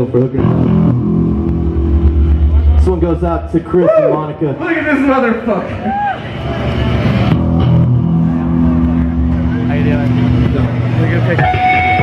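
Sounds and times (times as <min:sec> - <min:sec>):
electric guitar and bass drone: 0:00.0 - 0:12.0.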